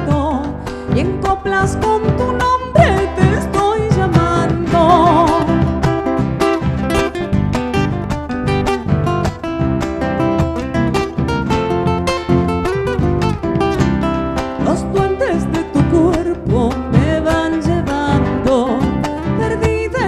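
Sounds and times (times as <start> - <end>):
bass drum steady beat: 0.0 - 18.4
acoustic guitars picking: 0.0 - 20.0.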